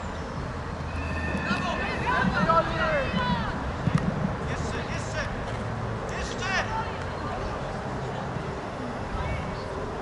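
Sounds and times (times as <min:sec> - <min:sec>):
low outdoor rumble: 0:00.0 - 0:10.0
distant shouts of footballers: 0:00.9 - 0:03.8.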